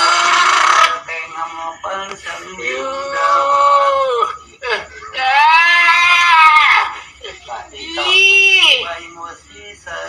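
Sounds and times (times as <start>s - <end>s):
person wailing: 2.8s - 8.8s.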